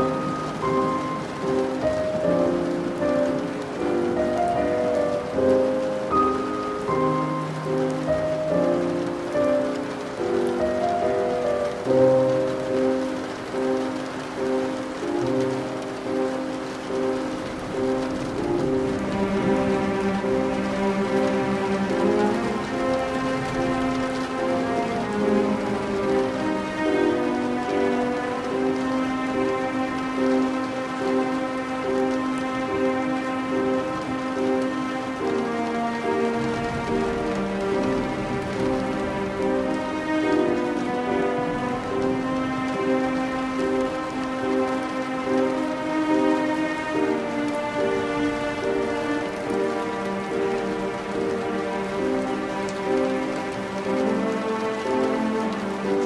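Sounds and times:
slow classical music: 0.0 - 56.0
steady rain falling: 0.0 - 56.0.

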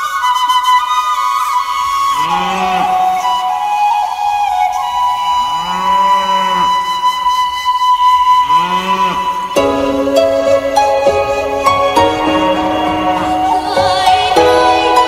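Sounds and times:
held flute note: 0.0 - 15.0
instrumental music: 0.0 - 15.0
cow mooing: 2.2 - 3.0, 5.5 - 6.9, 8.5 - 9.6.

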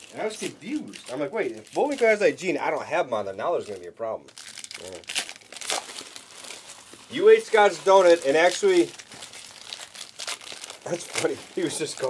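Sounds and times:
plastic wrapping crinkling: 0.0 - 2.9, 3.6 - 12.0
person speaking: 0.0 - 5.1, 7.1 - 9.0, 10.8 - 12.0.

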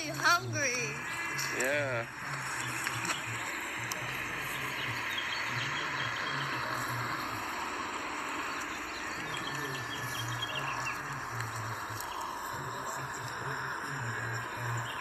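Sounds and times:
insects chirring: 0.0 - 15.0
low hum: 0.0 - 15.0
faint bird chirps: 0.1 - 15.0.

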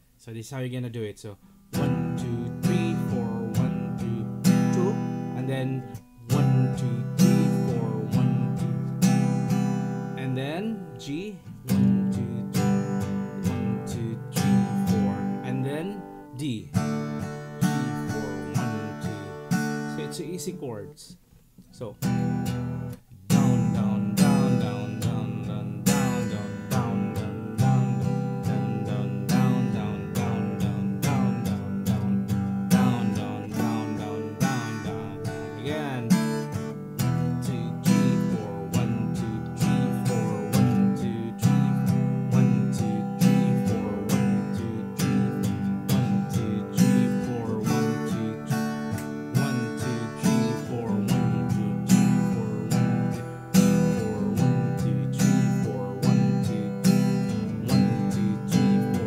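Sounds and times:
acoustic guitar strumming: 1.5 - 59.0.

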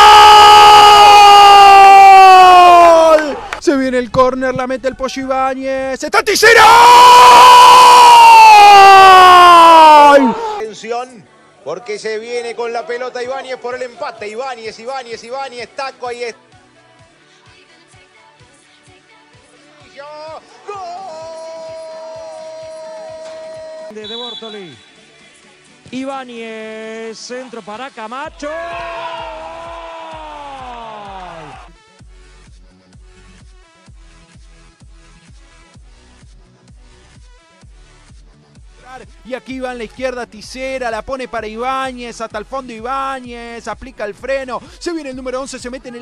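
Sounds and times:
commentator shouting: 6.0 - 10.8.

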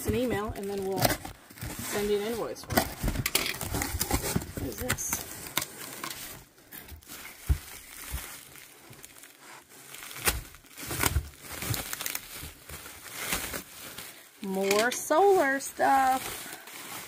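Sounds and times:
bubble wrap crinkling: 0.0 - 17.0.

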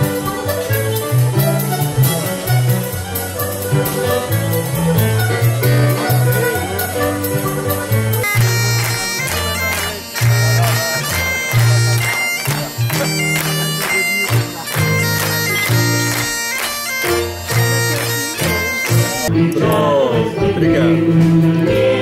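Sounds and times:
folk dance tune on accordion and fiddle: 0.0 - 19.4.

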